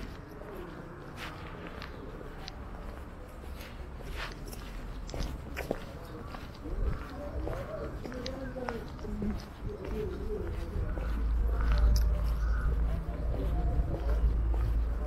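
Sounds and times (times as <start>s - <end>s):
faint distant voices: 0.0s - 15.0s
footsteps on brick pavement: 0.0s - 15.0s.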